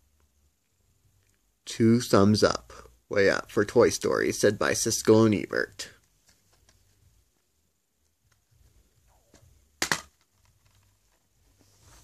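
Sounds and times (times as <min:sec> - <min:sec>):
plastic case snapping open: 0:09.8 - 0:10.4
faint handling rustle: 0:10.3 - 0:12.0.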